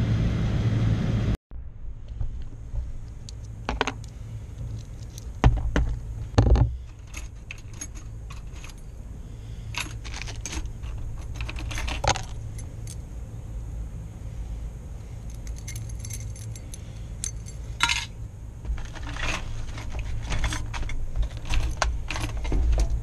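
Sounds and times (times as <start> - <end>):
steady low hum: 0.0 - 23.0
keys and metal parts jingling: 3.3 - 5.7, 6.7 - 13.1, 15.0 - 23.0.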